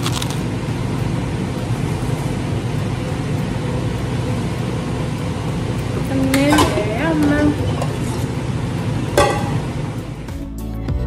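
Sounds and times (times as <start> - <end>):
low fan hum: 0.0 - 10.6.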